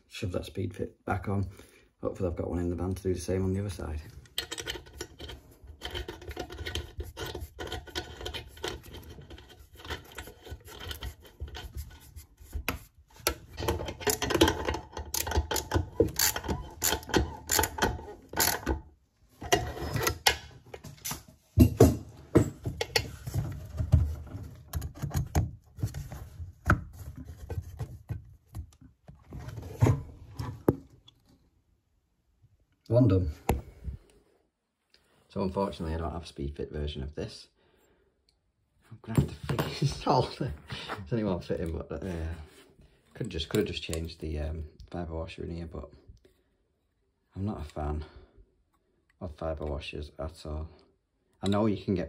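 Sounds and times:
plumbing fittings scraping: 4.2 - 18.8, 19.4 - 21.2.

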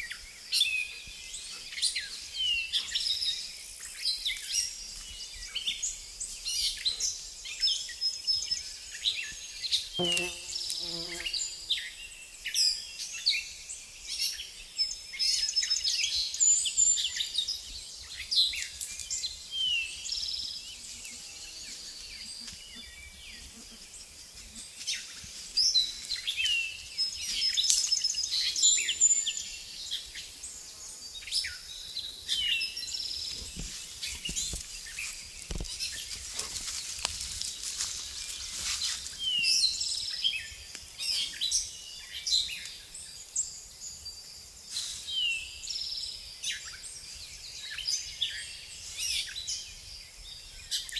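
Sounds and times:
birds chirping and trilling: 0.0 - 50.9
footsteps in wet undergrowth: 33.2 - 40.2.

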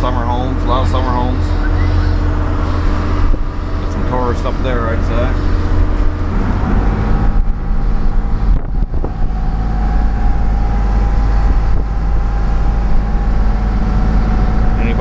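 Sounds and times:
boat engine droning: 0.0 - 15.0.

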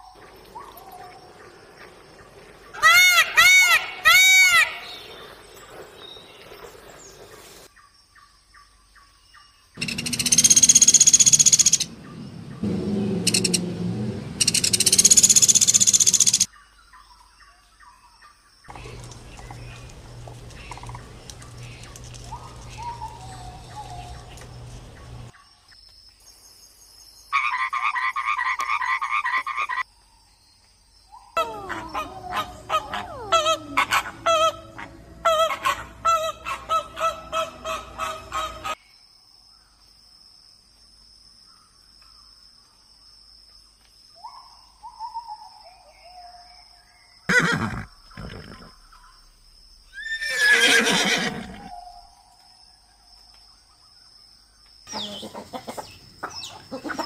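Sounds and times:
rapid repeated animal calls: 9.8 - 12.0, 12.6 - 13.8, 14.4 - 16.5
loud whinny-like call: 12.6 - 16.5, 50.0 - 51.9.

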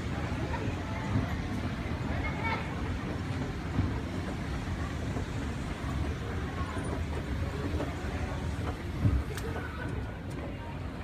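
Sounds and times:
escalator rumbling: 0.0 - 11.0.

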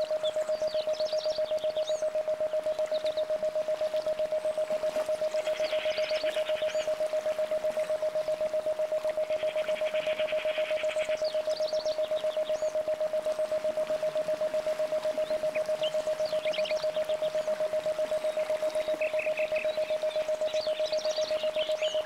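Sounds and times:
pulsing pure tone: 0.0 - 22.0.

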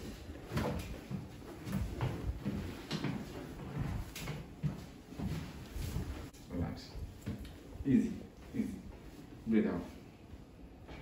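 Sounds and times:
clothing rustle: 0.0 - 6.4.

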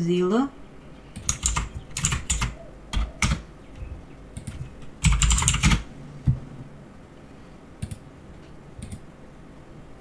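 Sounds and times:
typing on computer keyboard: 1.2 - 3.5, 4.4 - 5.9, 8.8 - 9.0.

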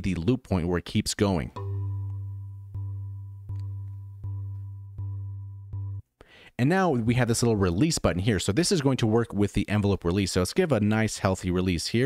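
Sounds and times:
loop point clicks: 1.6 - 5.8
looping low marimba tone: 1.6 - 6.0.

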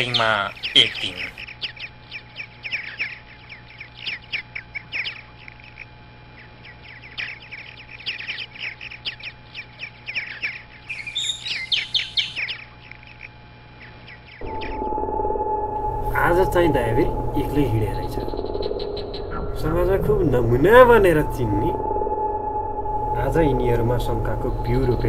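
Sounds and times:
songbirds chirping: 0.0 - 15.1, 15.7 - 25.0
low background hum: 0.0 - 25.0.

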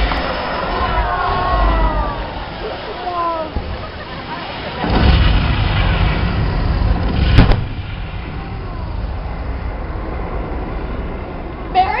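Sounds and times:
pyrotechnic explosions: 0.0 - 11.7.

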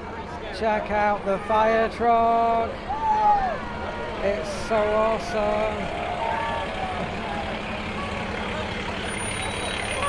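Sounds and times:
crowd voices: 0.0 - 10.0
diesel engine running: 0.0 - 10.0.

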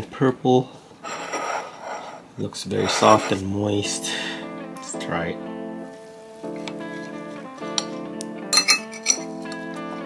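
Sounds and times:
metal spoon scraping ceramic plate: 1.0 - 3.5
background guitar music: 2.8 - 10.0.

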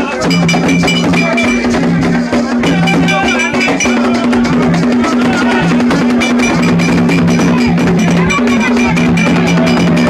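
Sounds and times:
fast dense percussion: 0.0 - 10.0
ringing metal strikes: 0.1 - 10.0.

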